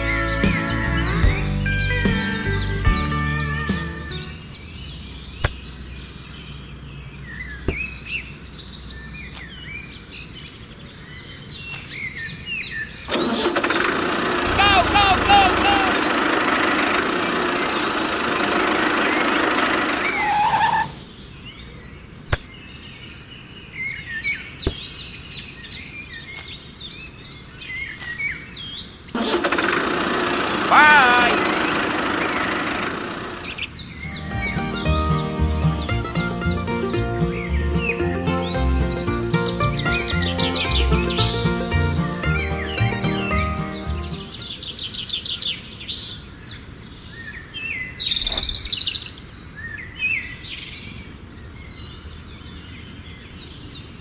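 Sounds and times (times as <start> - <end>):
birds chirping: 0.0 - 54.0
loud engine-like noise: 13.1 - 21.0, 29.2 - 33.7
rhythmic music: 14.5 - 16.1, 34.2 - 44.3.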